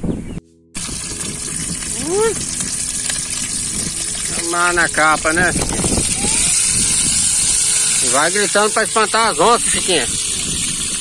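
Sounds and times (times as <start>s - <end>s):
wind rumbling on microphone: 0.0s - 8.1s, 9.3s - 11.0s
fish sizzling in hot oil: 0.8s - 11.0s.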